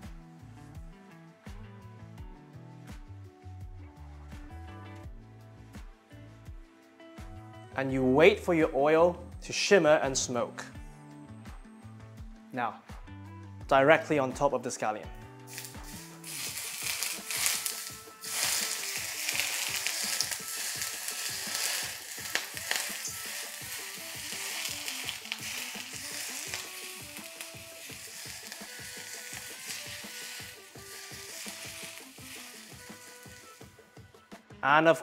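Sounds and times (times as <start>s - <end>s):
soft background music: 0.0s - 35.0s
hot oil sizzling on fish: 15.5s - 33.9s.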